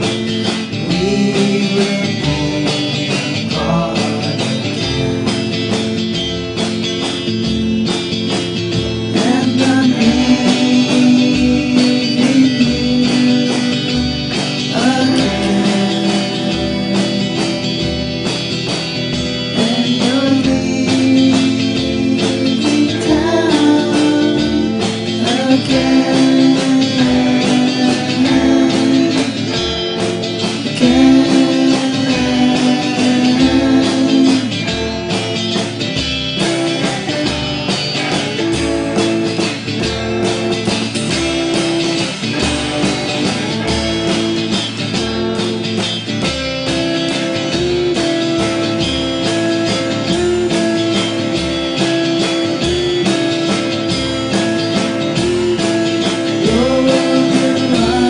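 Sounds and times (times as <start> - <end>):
electric guitars playing: 0.0 - 58.0.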